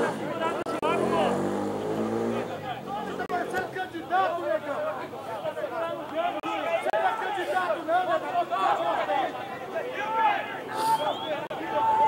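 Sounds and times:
vehicle engine humming: 0.0 - 5.2
voices calling out: 0.0 - 12.0.

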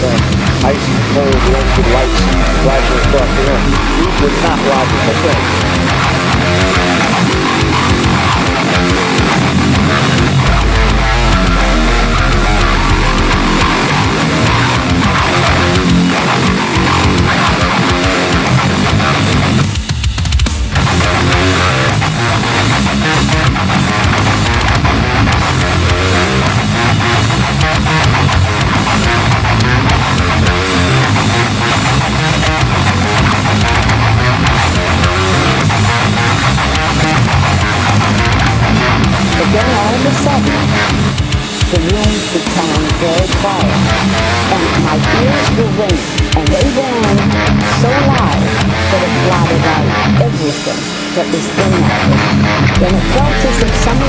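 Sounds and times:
distorted electric guitar riff: 0.0 - 54.0.

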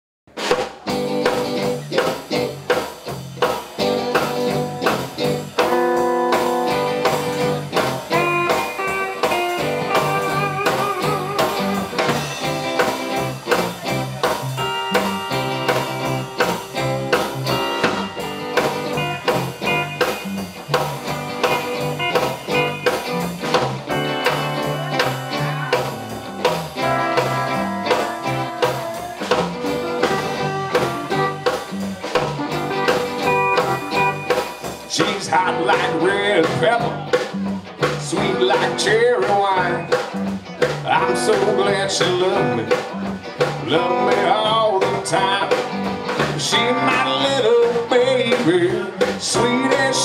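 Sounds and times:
live blues band: 0.3 - 50.0.

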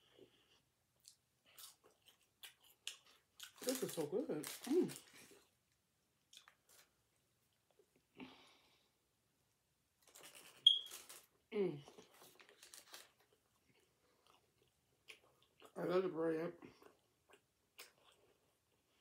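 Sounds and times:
chewing and wet mouth noises: 0.2 - 5.5, 6.2 - 8.0, 11.9 - 15.8, 16.7 - 19.0.

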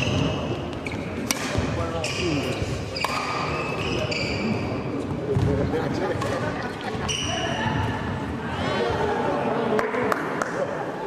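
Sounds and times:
racket hitting shuttlecock: 0.0 - 2.2, 2.9 - 3.9
shoes squeaking on court floor: 0.0 - 8.3
voices in a hall: 0.0 - 11.0.

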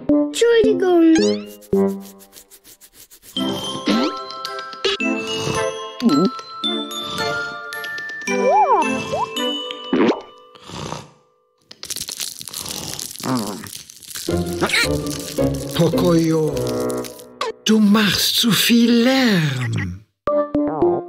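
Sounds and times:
playful cartoon music: 0.0 - 2.6, 3.3 - 10.6, 14.2 - 17.7, 20.2 - 21.0
character's wordless voice: 15.6 - 16.8, 17.6 - 20.1.

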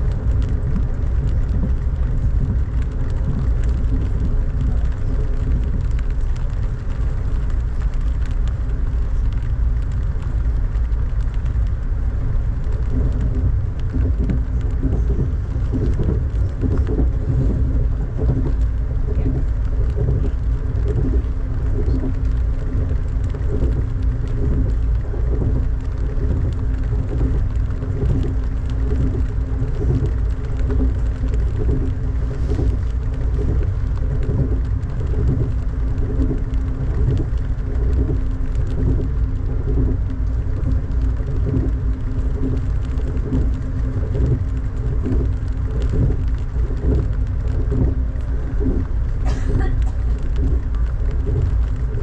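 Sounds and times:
train interior rumble: 0.0 - 52.0.

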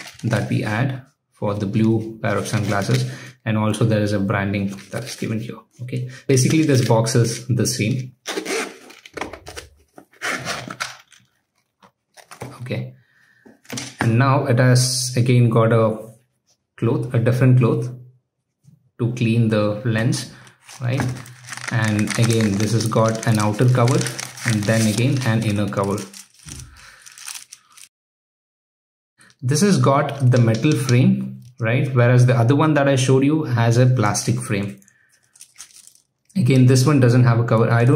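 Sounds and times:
paper wrapper crinkling: 0.0 - 0.5, 2.3 - 3.2, 4.7 - 5.3, 6.4 - 7.4, 8.3 - 12.5, 20.4 - 27.9, 30.2 - 31.5, 34.9 - 36.4
zipper being pulled open: 8.3 - 9.0, 10.1 - 10.9
case handling: 20.5 - 27.5.

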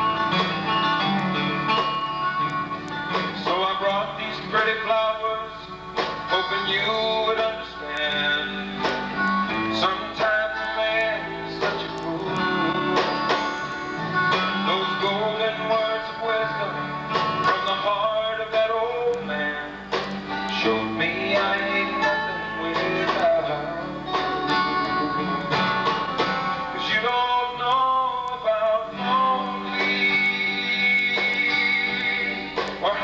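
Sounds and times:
live country band with guitars: 0.0 - 33.0.

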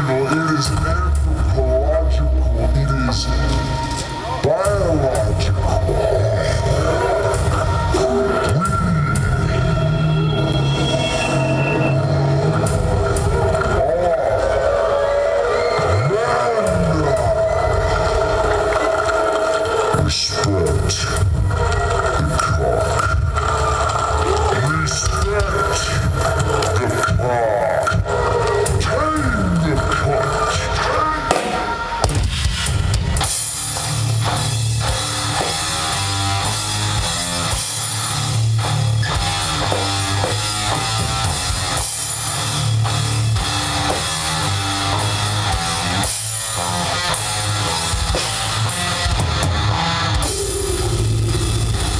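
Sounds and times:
death metal band playing live: 0.0 - 51.9.

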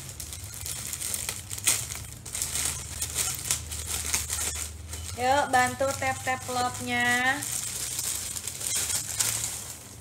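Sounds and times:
plastic wrapping crinkling: 0.0 - 10.0.

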